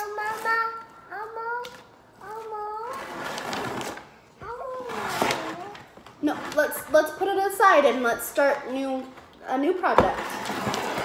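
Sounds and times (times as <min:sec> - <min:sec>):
toddler babbling: 0:00.0 - 0:03.1, 0:04.4 - 0:05.8.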